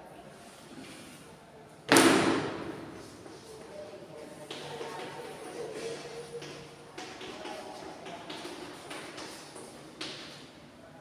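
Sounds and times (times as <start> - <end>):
loud bang echoing in room: 1.9 - 3.2.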